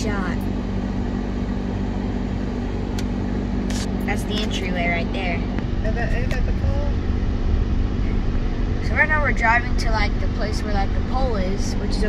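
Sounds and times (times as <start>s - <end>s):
car engine and tyre hum: 0.0s - 12.0s.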